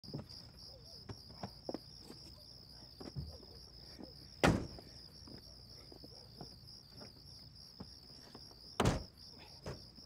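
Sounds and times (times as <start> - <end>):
crickets chirping: 0.1 - 10.0.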